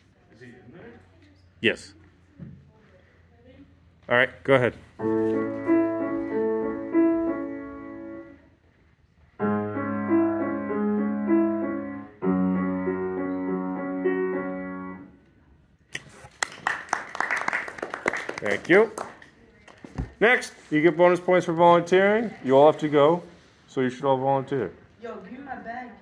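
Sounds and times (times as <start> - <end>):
grand piano slow chords: 5.0 - 8.5, 9.4 - 15.3.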